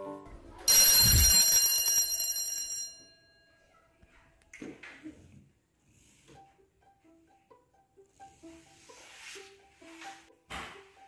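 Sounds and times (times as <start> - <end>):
loud bell-like ring: 0.7 - 3.8.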